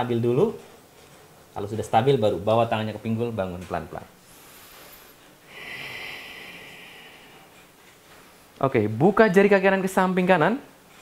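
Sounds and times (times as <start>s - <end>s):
faint room noise: 0.0s - 11.0s
man exhaling: 5.5s - 7.5s.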